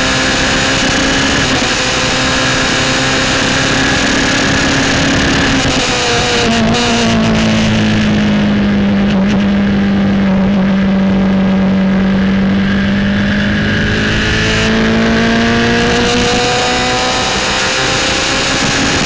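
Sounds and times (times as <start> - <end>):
race car engine: 0.0 - 19.0
wind and road noise: 0.0 - 19.0.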